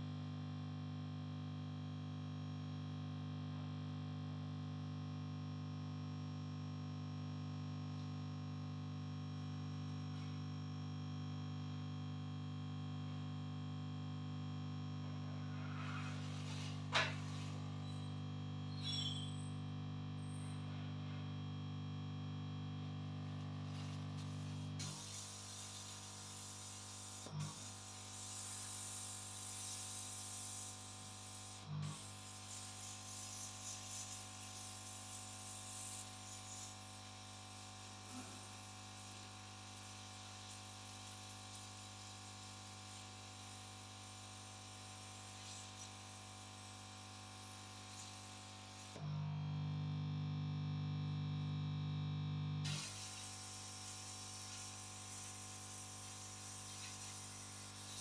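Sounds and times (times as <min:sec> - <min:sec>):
air pump buzzing hum: 0:06.9 - 0:58.0
air hissing from nozzle: 0:52.7 - 0:53.6.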